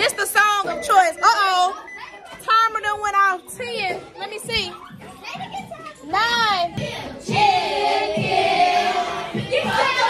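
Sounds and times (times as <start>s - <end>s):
children calling and chattering: 0.0s - 10.0s.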